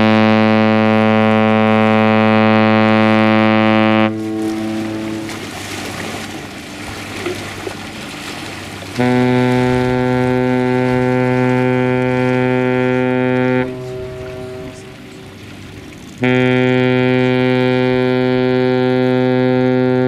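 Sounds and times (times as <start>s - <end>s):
ship's horn blasts: 0.0s - 20.0s.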